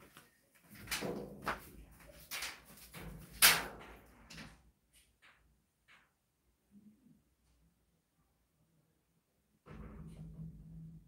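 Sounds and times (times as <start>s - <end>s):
scrapes and knocks of person moving: 0.0s - 4.2s.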